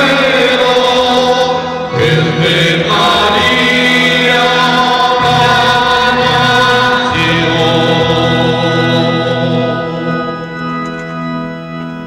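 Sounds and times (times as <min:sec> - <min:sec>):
voices singing a hymn: 0:00.0 - 0:11.2.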